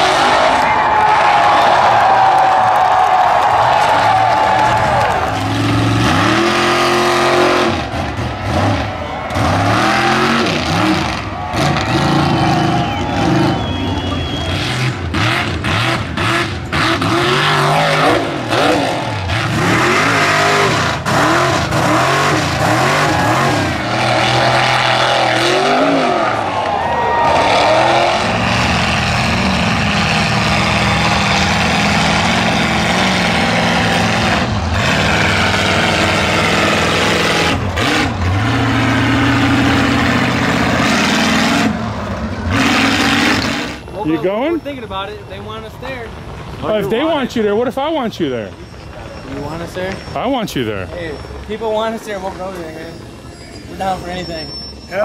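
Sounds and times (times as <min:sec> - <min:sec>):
truck engines revving hard: 0:00.0 - 0:55.0.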